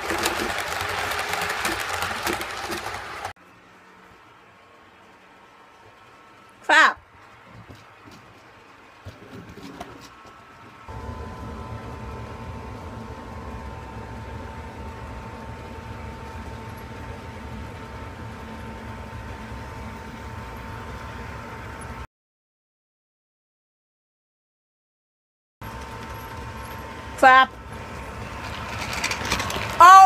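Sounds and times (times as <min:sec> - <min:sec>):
model train motor whine: 0:25.7 - 0:30.0.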